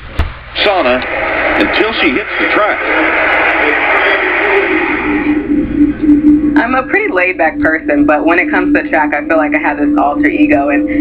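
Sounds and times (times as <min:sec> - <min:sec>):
television audio through speaker: 0:00.0 - 0:11.0.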